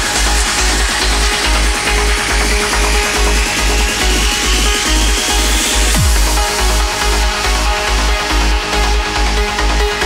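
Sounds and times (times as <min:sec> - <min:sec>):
steady kick drum: 0:00.0 - 0:10.0
trance music: 0:00.0 - 0:10.0.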